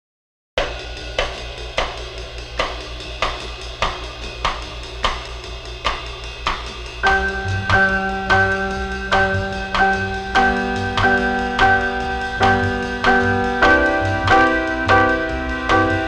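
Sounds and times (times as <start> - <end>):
bass notes: 0.6 - 16.0
drum kit steady beat: 0.6 - 16.0
keyboard chords: 7.0 - 16.0.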